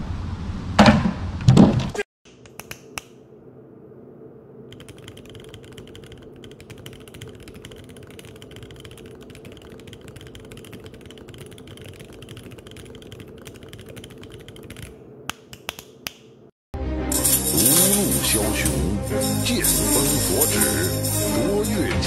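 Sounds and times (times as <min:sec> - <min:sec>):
fast typing on mechanical keyboard: 0:04.7 - 0:15.0
loud music: 0:16.8 - 0:22.0.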